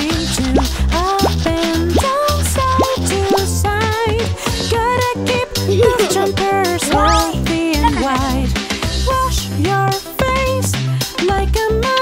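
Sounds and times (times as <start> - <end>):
bouncy children's song music: 0.0 - 12.0
rising bloop sound effects: 6.9 - 7.4.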